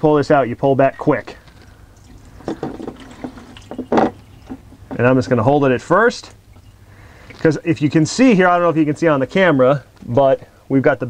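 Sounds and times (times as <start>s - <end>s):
oil gushing into drain pan: 1.5s - 5.0s.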